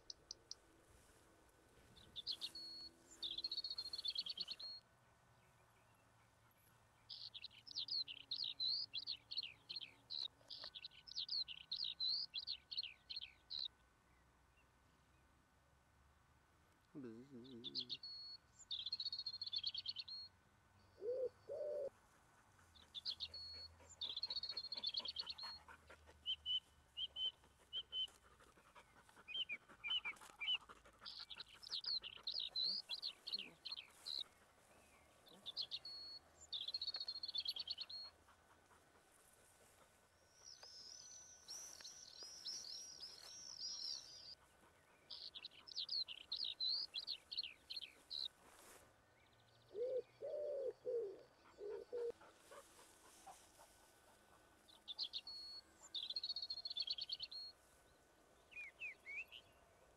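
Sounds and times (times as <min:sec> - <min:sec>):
songbirds singing: 0:00.0 - 0:00.6, 0:01.8 - 0:15.3, 0:16.8 - 0:59.9
pigeon cooing: 0:21.0 - 0:21.9, 0:49.7 - 0:52.2.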